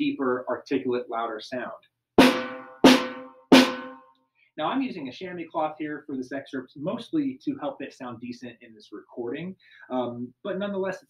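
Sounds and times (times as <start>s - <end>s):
snare drum strokes: 2.2s - 4.0s.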